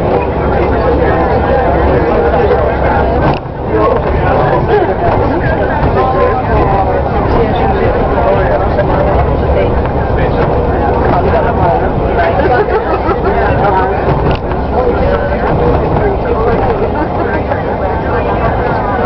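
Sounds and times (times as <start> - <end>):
bus engine rumble: 0.0 - 19.0
passengers talking: 0.0 - 19.0
tyres on wet road: 0.0 - 19.0.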